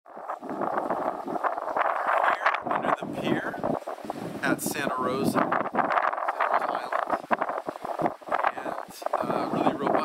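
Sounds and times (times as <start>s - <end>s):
wind on microphone: 0.1s - 10.0s.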